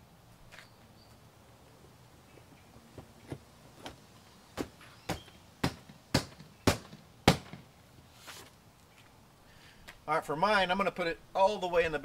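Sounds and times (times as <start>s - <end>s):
sharp knocks on seat backrest: 4.6s - 7.7s.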